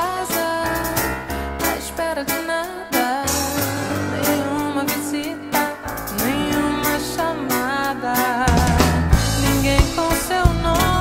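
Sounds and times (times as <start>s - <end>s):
acoustic guitar: 0.0s - 11.0s
gliding melody line: 1.7s - 10.4s.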